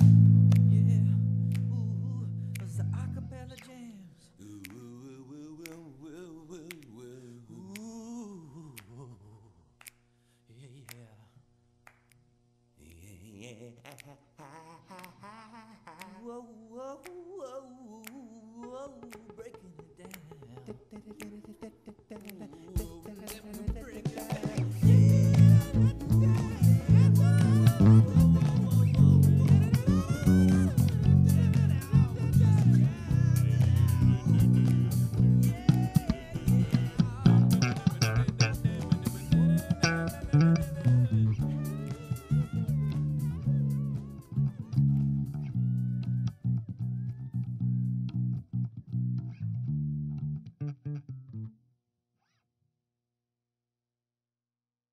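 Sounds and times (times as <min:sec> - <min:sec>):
electric bass guitar playing: 0:00.0 - 0:03.6, 0:24.5 - 0:51.6.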